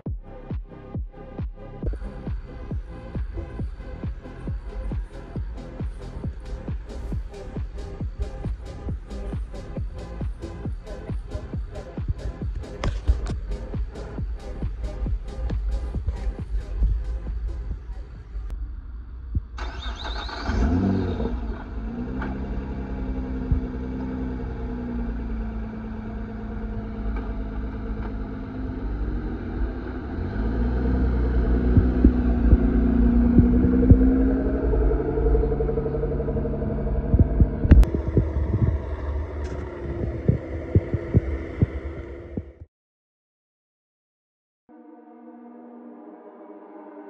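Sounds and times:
car engine idling and revving: 0:00.0 - 0:42.7.

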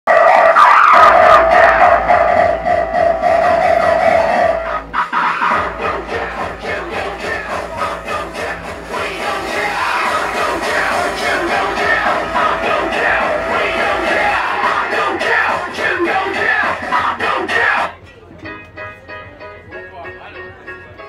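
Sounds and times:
psytrance dance music: 0:00.1 - 0:18.1
held synth tone: 0:00.3 - 0:15.2.

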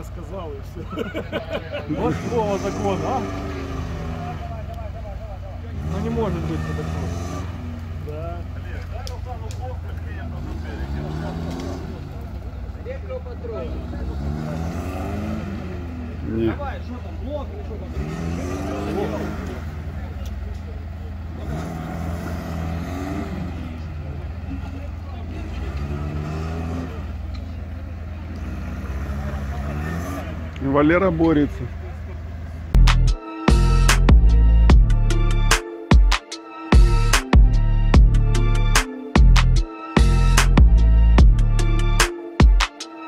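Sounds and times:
car engine revving: 0:00.0 - 0:43.0.

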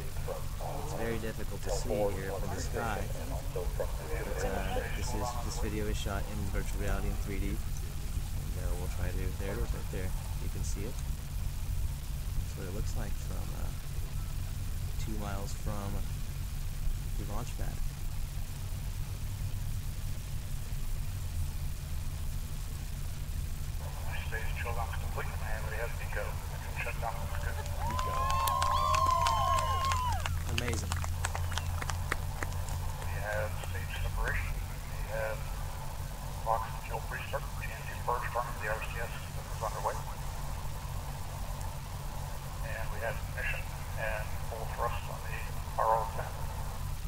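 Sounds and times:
muffled indistinct voices: 0:00.0 - 0:11.0, 0:12.4 - 0:16.2, 0:23.8 - 0:46.8
steady low hum: 0:00.0 - 0:47.0.

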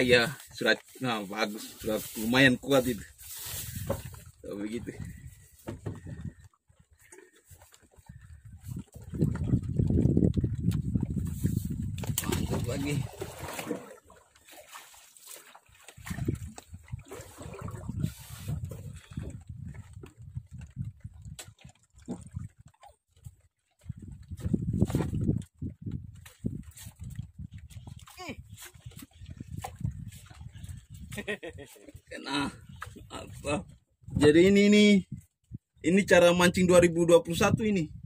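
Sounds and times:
water slapping against boat hull: 0:00.0 - 0:34.5.

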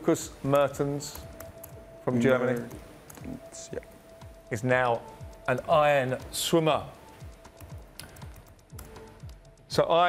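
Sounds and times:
quiet music with low beat: 0:00.0 - 0:10.0.

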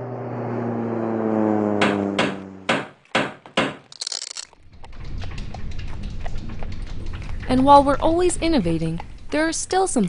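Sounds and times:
propeller plane engine drone: 0:00.0 - 0:03.1, 0:04.0 - 0:10.0.

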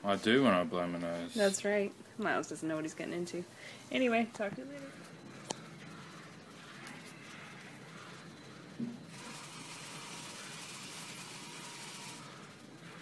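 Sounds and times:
background hiss: 0:00.0 - 0:13.0.

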